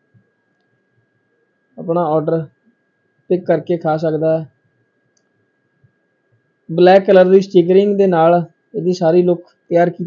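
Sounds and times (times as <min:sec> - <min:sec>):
man speaking: 0:01.8 - 0:02.5, 0:03.3 - 0:04.5, 0:06.7 - 0:10.0.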